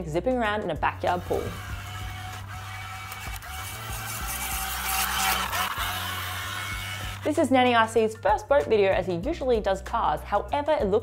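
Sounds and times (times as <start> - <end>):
background music: 0.0 - 11.0
model boat motor whirring: 1.1 - 7.3.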